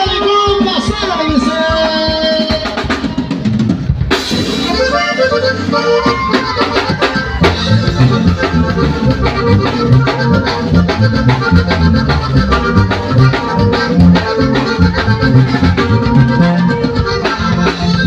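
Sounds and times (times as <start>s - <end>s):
bass line: 0.0s - 18.0s
drum kit beat: 0.0s - 18.0s
button accordion: 4.4s - 18.0s
strummed guitar: 4.4s - 18.0s.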